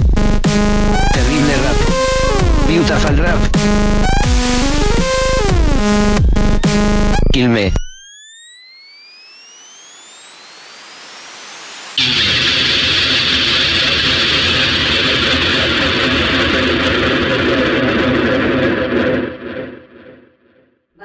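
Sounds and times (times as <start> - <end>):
harsh distorted noise: 0.0 - 8.4, 9.2 - 20.5
rising synth sweeps: 0.4 - 12.5
white-noise riser: 7.8 - 20.3.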